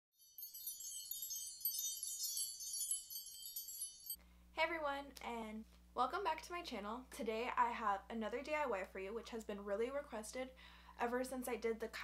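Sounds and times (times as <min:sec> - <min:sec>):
high tinkling chimes: 0:00.2 - 0:04.2.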